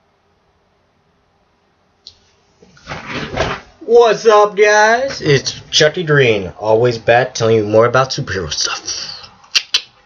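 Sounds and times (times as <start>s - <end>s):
faint room hiss: 0.0s - 10.0s
rustling and bumping on microphone: 2.6s - 3.8s.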